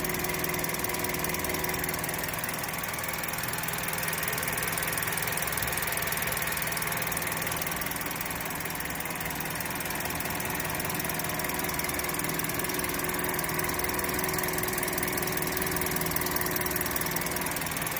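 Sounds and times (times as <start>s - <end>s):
car engine idling: 0.0s - 17.9s.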